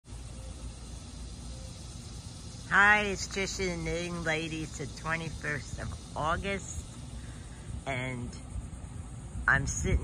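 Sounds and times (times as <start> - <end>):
low background rumble: 0.1 - 10.0.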